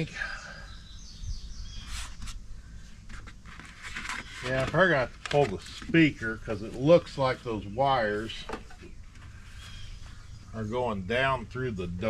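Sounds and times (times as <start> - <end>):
small bird chirping: 0.0 - 3.0, 8.7 - 10.7.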